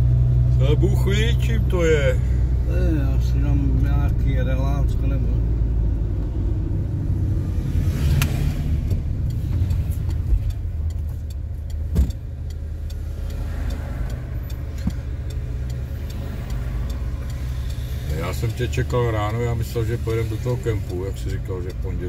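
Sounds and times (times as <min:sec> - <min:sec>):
car engine and road rumble: 0:00.0 - 0:22.0
sharp thump: 0:11.9 - 0:12.2.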